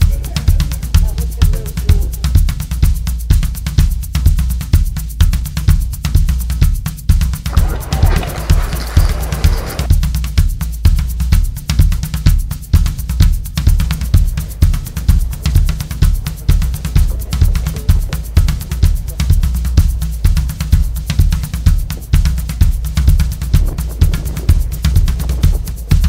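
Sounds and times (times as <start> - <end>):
bass drum and snare pattern: 0.0 - 26.0.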